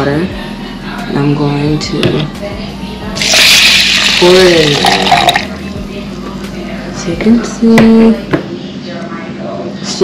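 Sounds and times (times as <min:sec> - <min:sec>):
water pouring into rice: 0:03.2 - 0:05.4
steady low hum: 0:04.1 - 0:09.6.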